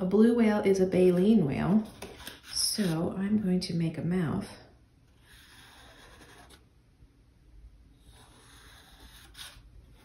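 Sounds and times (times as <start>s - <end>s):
marker drawing on paper plate: 5.2s - 6.6s.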